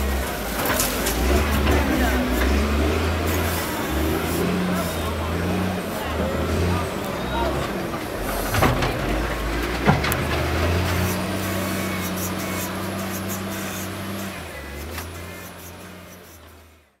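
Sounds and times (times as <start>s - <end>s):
engine running at low pitch: 0.0s - 17.0s.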